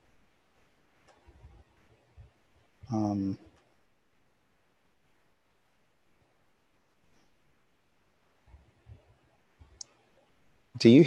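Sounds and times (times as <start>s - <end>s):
man speaking: 2.9s - 3.4s, 10.8s - 11.0s.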